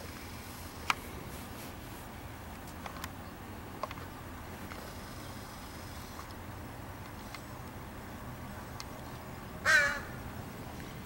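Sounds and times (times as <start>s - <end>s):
faint background noise: 0.0s - 11.0s
crow cawing: 9.6s - 10.2s.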